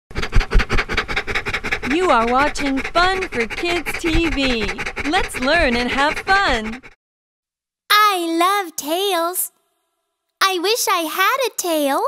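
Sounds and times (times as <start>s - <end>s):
fast scratchy strokes: 0.1s - 7.0s
heavy low thumps: 0.2s - 6.9s.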